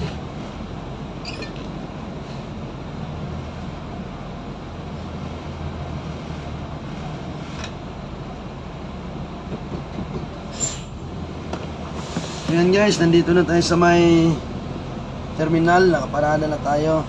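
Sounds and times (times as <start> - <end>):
bus diesel engine rumble: 0.0 - 17.0.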